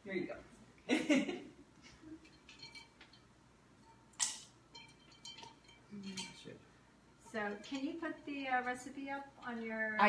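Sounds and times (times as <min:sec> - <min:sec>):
metal spoon clinking glass: 0:02.2 - 0:06.6, 0:07.3 - 0:08.6.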